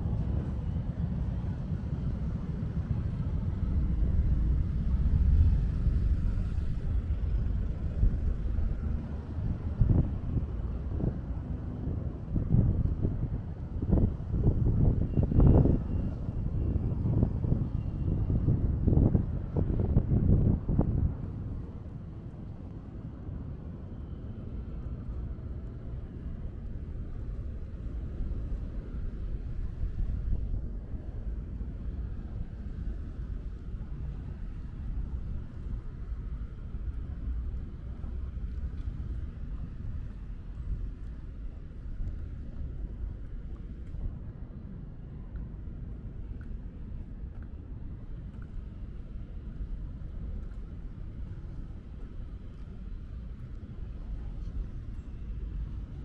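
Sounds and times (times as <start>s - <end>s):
low wind buffets: 0.0s - 56.0s
road traffic rumble: 0.0s - 56.0s.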